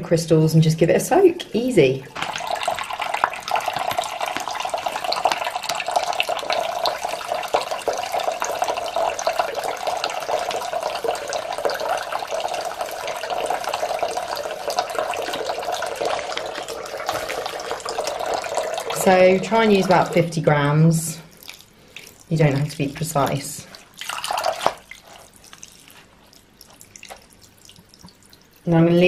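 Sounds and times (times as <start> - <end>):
tap running into a filling basin: 2.1 - 20.4, 22.5 - 25.8.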